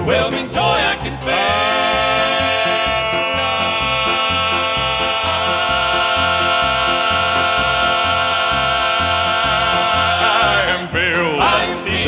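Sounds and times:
bass line: 0:00.0 - 0:12.0.

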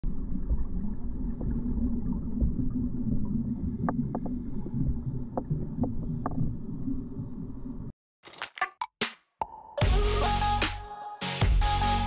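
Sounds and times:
low underwater rumble: 0:00.0 - 0:07.9
regulator bubbles: 0:00.0 - 0:07.9.

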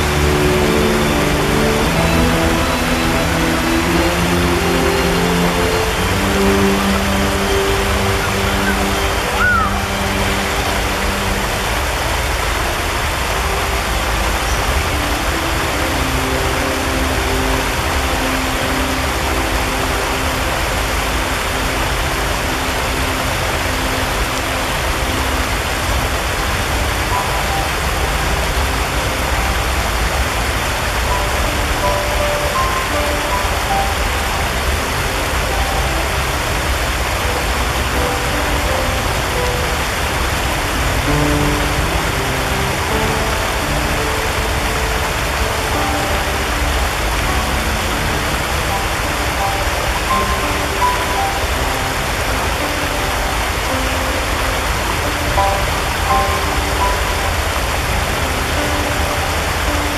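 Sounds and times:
faint held musical notes: 0:00.0 - 0:59.9
stream rushing over stones: 0:00.0 - 0:59.9.

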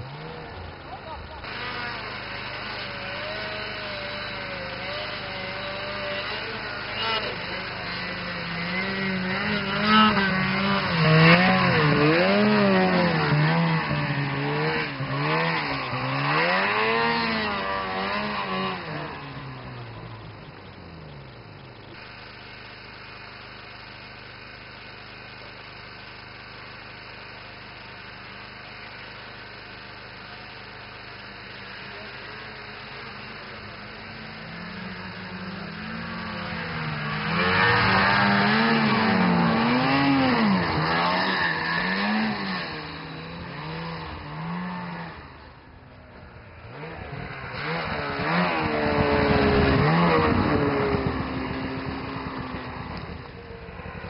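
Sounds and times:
snowmobile engines revving: 0:00.0 - 0:54.0.

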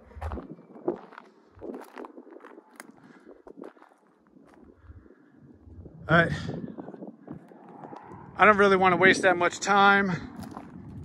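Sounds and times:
footsteps on gravel: 0:00.0 - 0:04.8, 0:10.3 - 0:11.0.

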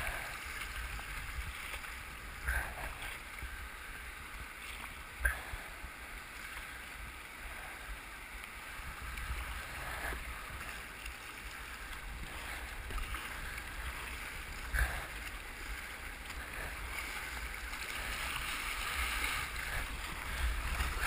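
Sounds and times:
sharp water splashes: 0:09.7 - 0:21.0.

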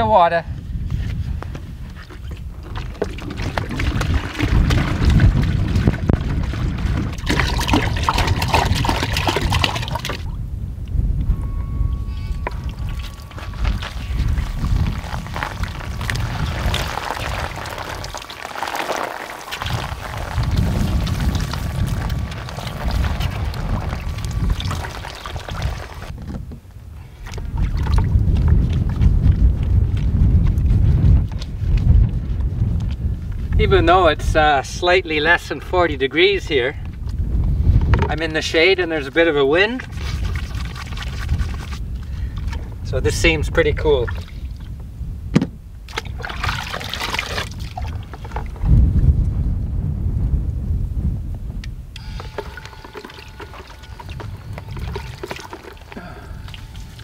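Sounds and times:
wind buffeting microphone: 0:00.0 - 0:18.6, 0:19.5 - 0:57.0
water pouring into bucket: 0:02.0 - 0:10.3, 0:12.4 - 0:26.2, 0:27.2 - 0:28.8, 0:39.7 - 0:42.6, 0:45.9 - 0:48.7, 0:52.0 - 0:57.0
thin steady whine: 0:10.3 - 0:17.2, 0:51.9 - 0:57.0
shower spraying water: 0:13.9 - 0:26.1.

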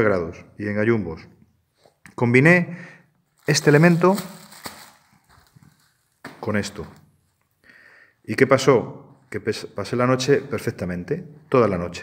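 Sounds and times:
foil crinkling: 0:03.3 - 0:07.4.

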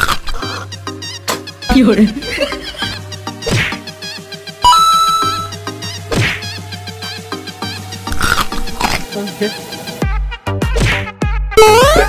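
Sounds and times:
steady electronic tones: 0:04.2 - 0:06.0, 0:11.6 - 0:12.0.

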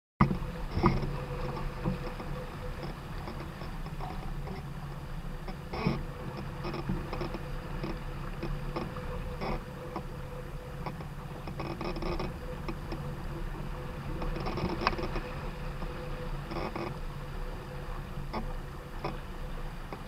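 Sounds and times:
boat knocks: 0:00.2 - 0:20.0
water rushing along boat hull: 0:00.2 - 0:20.0
wind on microphone: 0:00.2 - 0:20.0.

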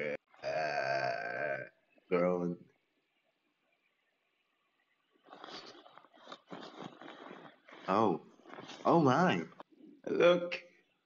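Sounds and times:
person groaning: 0:00.0 - 0:01.5.

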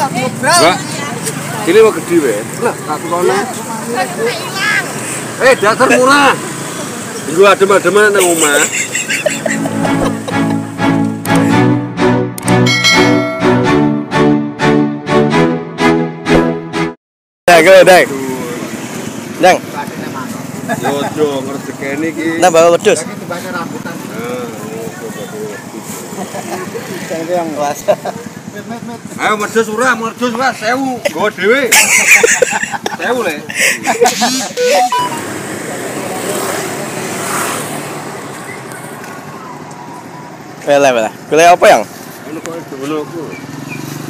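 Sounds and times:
market background noise: 0:00.0 - 0:10.4, 0:17.5 - 0:44.0
people talking and calling out: 0:00.0 - 0:11.8, 0:17.5 - 0:37.2
passing traffic: 0:00.0 - 0:44.0
person speaking: 0:34.2 - 0:35.2.

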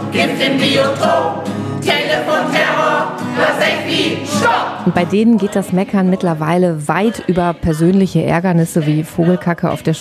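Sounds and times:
mixed choir singing: 0:00.0 - 0:09.9.

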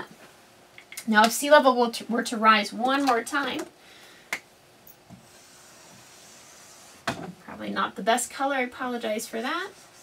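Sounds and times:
marker hissing on whiteboard: 0:05.1 - 0:07.1.

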